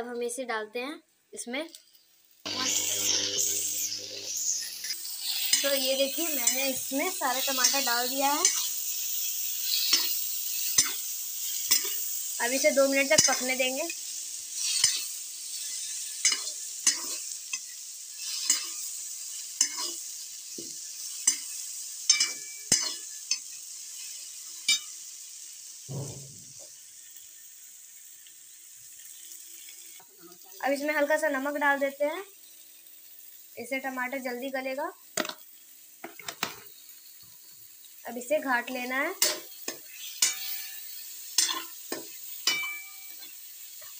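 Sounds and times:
onion and tomato frying: 0.0s - 43.9s
vegetables sizzling in hot oil: 1.3s - 43.9s
metal spoon scraping a pan: 2.5s - 13.8s, 14.6s - 20.1s, 21.0s - 25.0s, 39.2s - 43.9s.

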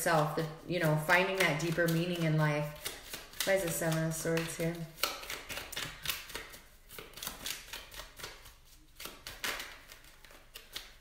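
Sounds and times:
cards being shuffled: 0.4s - 11.0s.

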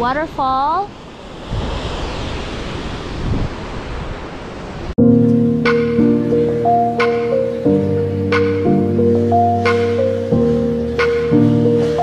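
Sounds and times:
wind rumbling on microphone: 0.0s - 5.0s
distant waterfall rushing: 0.0s - 12.0s.

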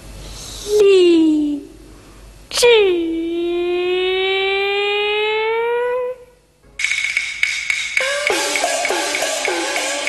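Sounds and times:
clattering percussion with gong: 6.8s - 10.0s.

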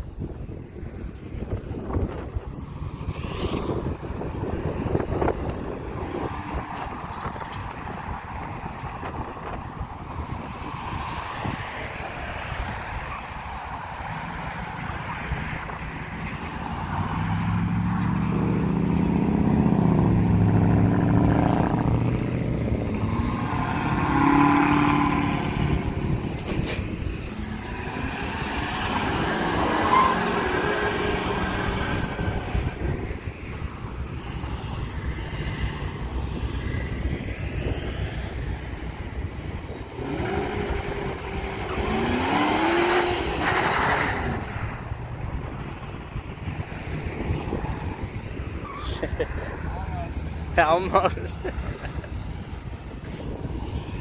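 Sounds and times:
traffic passing: 0.0s - 54.0s
cars accelerating: 1.8s - 54.0s
car engine revving: 16.5s - 32.9s, 39.9s - 44.6s.

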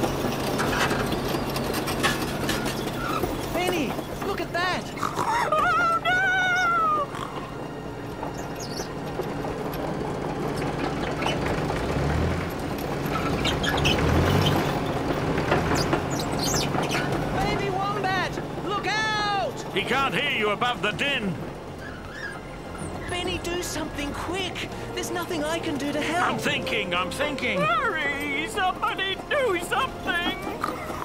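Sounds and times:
bulldozer engine rumbling: 0.0s - 31.0s.

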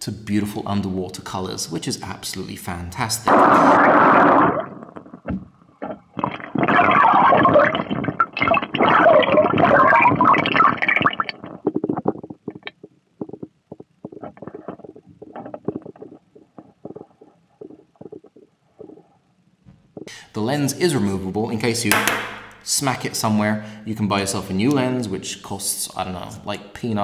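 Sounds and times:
muffled underwater sloshing: 3.4s - 19.0s.

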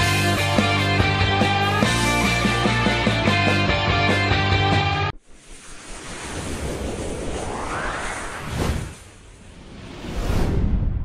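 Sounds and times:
music: 0.0s - 5.2s
rising sweep tone: 5.2s - 10.6s
hissing whoosh: 5.2s - 11.0s.

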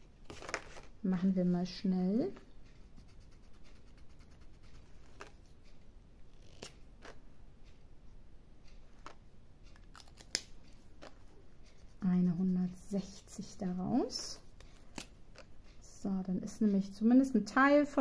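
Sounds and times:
pen scratching on paper: 2.8s - 5.4s.

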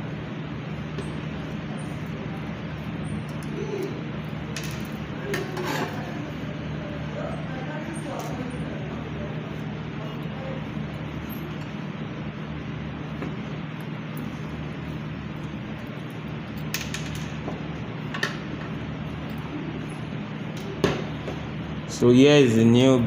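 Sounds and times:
steady room hum: 0.0s - 23.0s.

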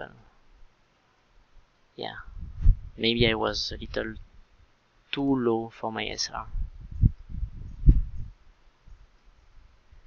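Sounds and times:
soft low thumps: 2.3s - 4.4s, 6.5s - 9.0s.

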